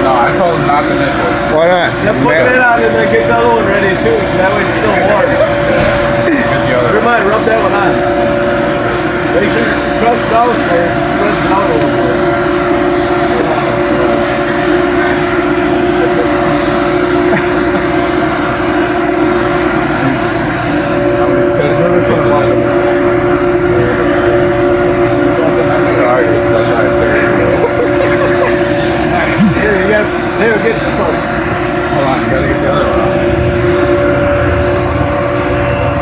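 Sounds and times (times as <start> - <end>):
faint voices: 0.0 - 36.0
machinery hum: 0.0 - 36.0.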